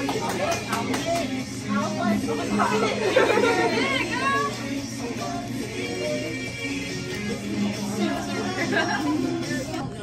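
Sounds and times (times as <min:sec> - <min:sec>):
high-pitched voices: 0:00.0 - 0:10.0
people chattering: 0:00.0 - 0:10.0.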